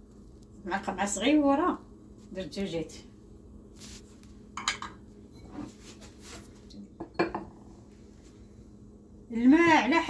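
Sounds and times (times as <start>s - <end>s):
glass bowl clinking on countertop: 4.6s - 5.6s, 7.0s - 7.6s.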